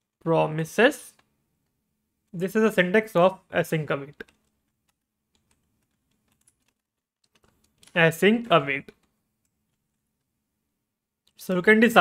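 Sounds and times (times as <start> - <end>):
faint keyboard typing: 4.1 - 10.4.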